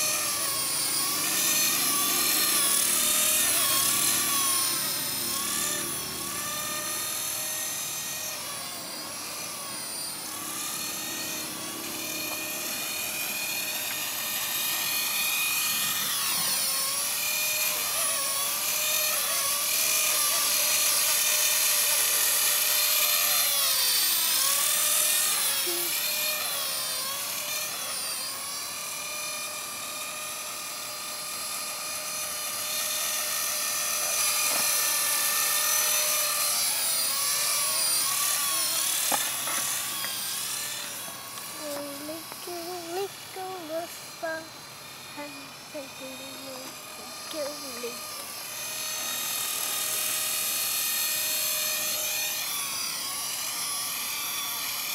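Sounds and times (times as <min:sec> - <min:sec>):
model helicopter whine: 0:00.0 - 0:54.9.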